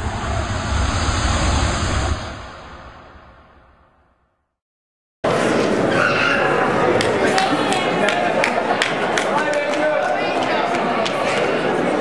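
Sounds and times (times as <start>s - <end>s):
rushing whoosh: 0.0s - 4.1s
deep rumble: 0.0s - 4.2s.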